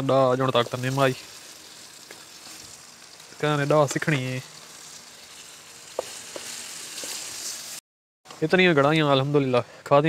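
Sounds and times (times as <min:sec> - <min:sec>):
chicken sizzling in hot oil: 0:00.0 - 0:07.8.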